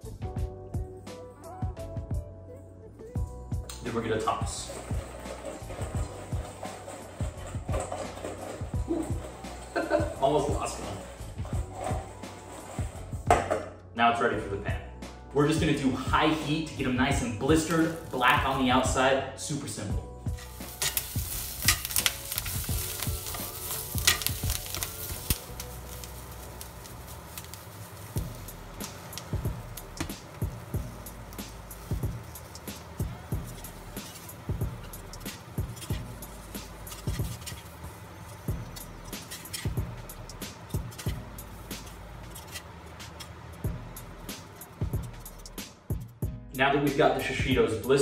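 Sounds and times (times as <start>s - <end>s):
background music with a beat: 0.0s - 13.9s, 28.2s - 37.5s, 43.0s - 47.9s
metal tongs scraping a pan: 4.3s - 13.0s, 17.5s - 18.9s, 20.3s - 45.6s
peppers sizzling in a skillet: 4.6s - 12.4s, 17.5s - 19.0s, 20.3s - 45.6s.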